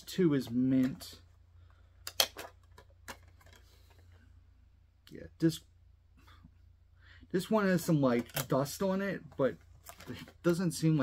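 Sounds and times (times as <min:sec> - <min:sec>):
plastic case clicks: 0:02.1 - 0:03.6.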